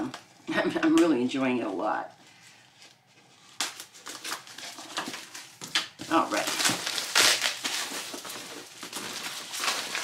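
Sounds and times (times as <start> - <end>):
plastic wrapping crinkling: 2.1 - 10.0.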